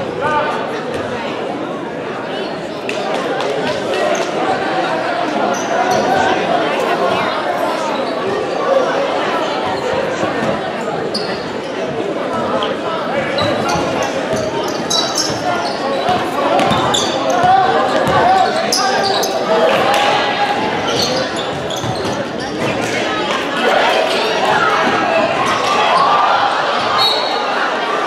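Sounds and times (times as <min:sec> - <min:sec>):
spectators chattering: 0:00.0 - 0:28.0
sneakers squeaking: 0:05.5 - 0:06.4, 0:09.6 - 0:27.8.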